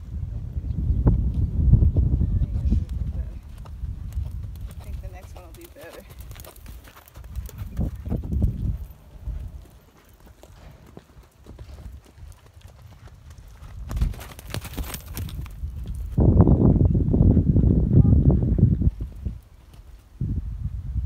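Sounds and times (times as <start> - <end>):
horse hoofbeats cantering: 2.4 - 17.8.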